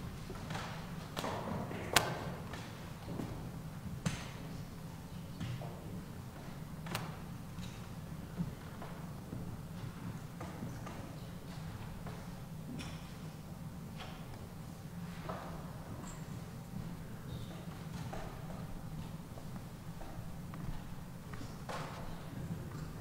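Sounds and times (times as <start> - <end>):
footsteps and light knocks: 0.0 - 23.0
low room hum: 0.0 - 23.0.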